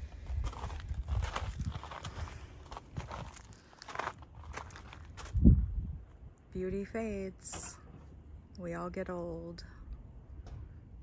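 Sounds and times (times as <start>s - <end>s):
footsteps crunching on gravel: 0.0s - 5.5s.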